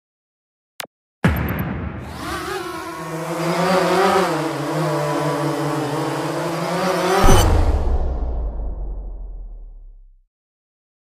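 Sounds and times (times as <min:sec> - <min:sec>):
motor-like hum: 0:02.1 - 0:08.1
deep low boom: 0:07.3 - 0:10.2.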